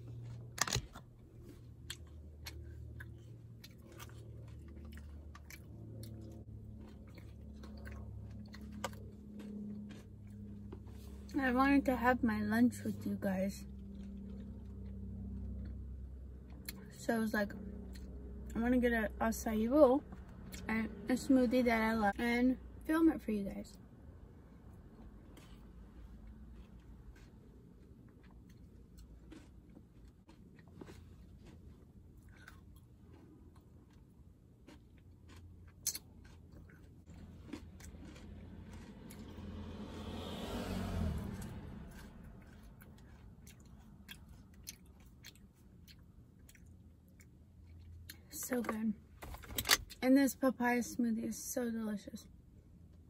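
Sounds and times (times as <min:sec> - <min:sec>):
quiet chewing: 0:00.0 - 0:11.4, 0:13.6 - 0:16.9, 0:24.7 - 0:39.5, 0:41.4 - 0:48.3
low steady hum: 0:00.0 - 0:53.0.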